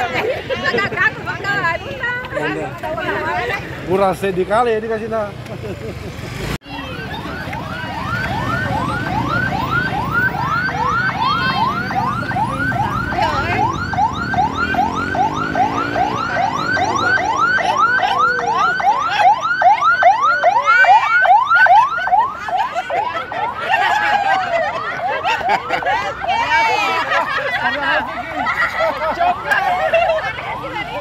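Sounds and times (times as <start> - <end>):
ambulance siren yelping: 6.6 - 31.0.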